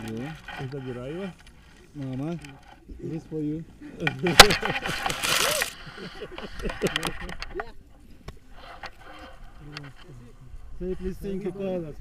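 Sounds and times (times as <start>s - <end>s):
harness rustling: 4.1s - 7.6s.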